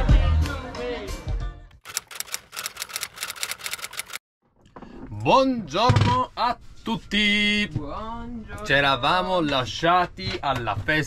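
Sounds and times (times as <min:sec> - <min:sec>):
typewriter keystroke clicks: 0:01.9 - 0:04.2.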